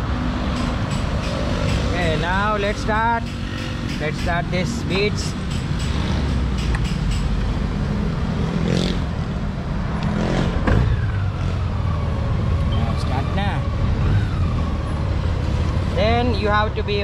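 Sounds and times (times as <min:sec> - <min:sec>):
street traffic: 0:00.0 - 0:17.0.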